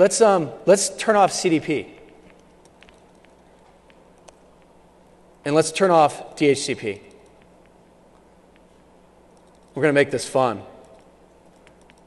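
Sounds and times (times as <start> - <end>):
low steady hum: 0.0 - 12.0
laptop keyboard typing: 2.2 - 4.4, 9.3 - 9.8, 10.8 - 12.0.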